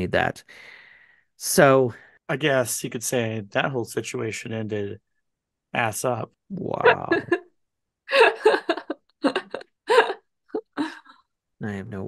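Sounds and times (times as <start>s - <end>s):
person laughing: 6.7s - 7.5s, 8.1s - 11.1s.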